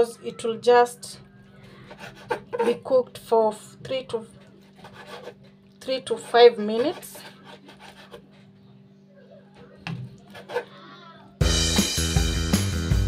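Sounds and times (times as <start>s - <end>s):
knife cutting on wooden board: 1.9s - 2.5s, 4.6s - 8.3s, 10.2s - 10.7s
background music: 11.4s - 13.0s.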